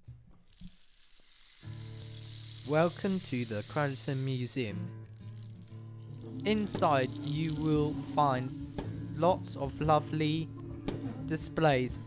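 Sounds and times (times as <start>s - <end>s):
low rumble and hiss: 1.4s - 12.0s
background music held chord: 6.0s - 12.0s.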